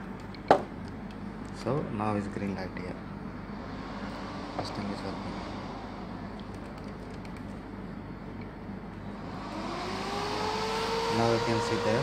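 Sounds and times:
computer cooling fans whooshing: 0.0s - 12.0s
fan whine rising in pitch: 0.0s - 12.0s.

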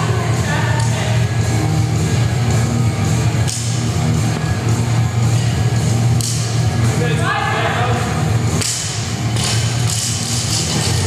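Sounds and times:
loud rock music: 0.0s - 11.0s.

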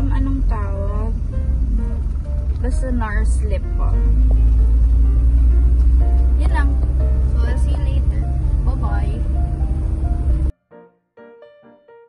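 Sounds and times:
car interior rumble: 0.0s - 10.5s
background music: 0.0s - 12.0s.

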